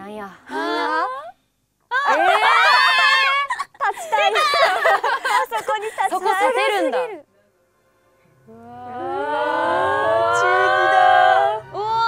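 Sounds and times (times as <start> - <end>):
held tones rising in pitch: 8.5 - 12.0.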